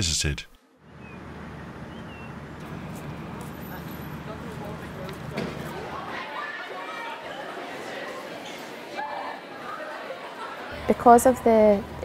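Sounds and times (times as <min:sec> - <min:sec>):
road traffic rumble: 0:00.7 - 0:06.2, 0:10.7 - 0:12.0.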